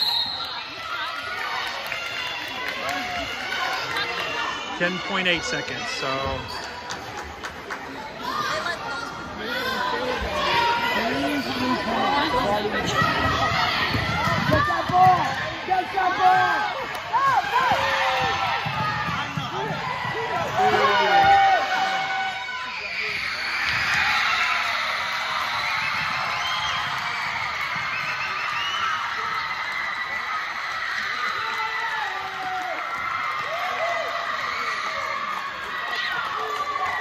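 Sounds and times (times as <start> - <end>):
crowd cheering: 0.0 - 37.0.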